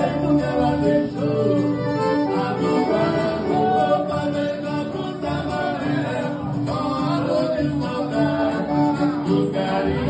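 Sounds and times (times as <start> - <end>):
acoustic guitar: 0.0 - 10.0
piano accordion playing: 1.3 - 4.0.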